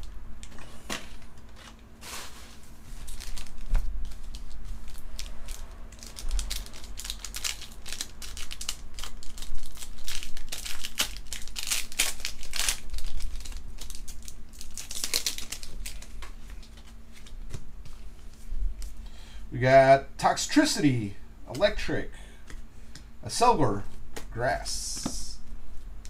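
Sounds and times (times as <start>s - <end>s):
foil wrappers crinkling: 0.0s - 19.0s.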